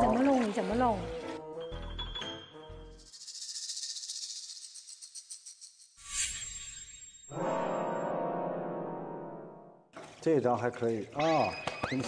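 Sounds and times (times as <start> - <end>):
shaker rattling: 3.0 - 5.9.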